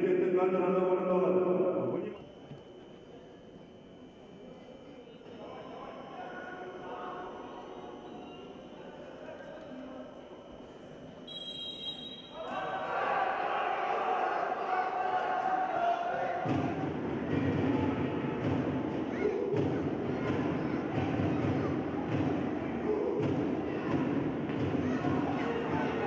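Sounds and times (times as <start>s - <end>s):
referee's whistle: 11.2s - 12.5s
players shouting: 12.3s - 18.6s.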